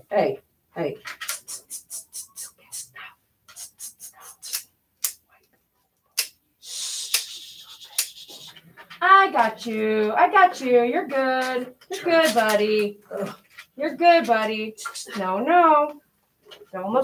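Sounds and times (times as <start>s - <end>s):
nail clippers clicking: 4.4s - 5.2s.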